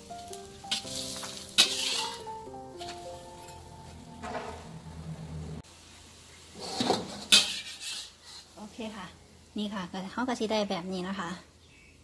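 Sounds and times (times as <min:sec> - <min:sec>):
metal spatula scraping a wok: 0:00.7 - 0:04.6, 0:06.6 - 0:08.6.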